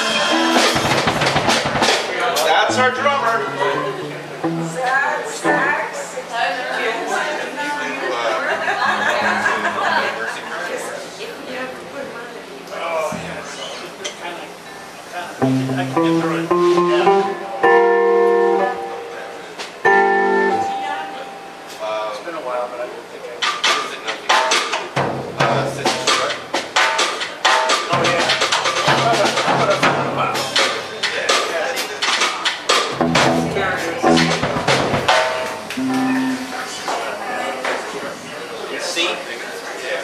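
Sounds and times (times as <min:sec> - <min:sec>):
electric guitar chords: 0:00.0 - 0:01.8, 0:02.6 - 0:06.0, 0:15.4 - 0:21.8, 0:32.9 - 0:36.9
live rock band playing: 0:00.0 - 0:06.2, 0:15.3 - 0:21.8, 0:32.5 - 0:37.0.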